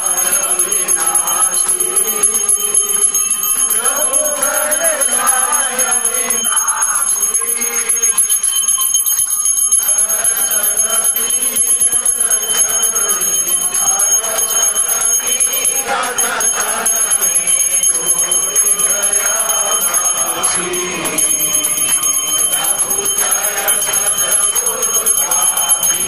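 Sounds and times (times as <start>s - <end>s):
temple bells ringing rapidly: 0.0s - 26.0s.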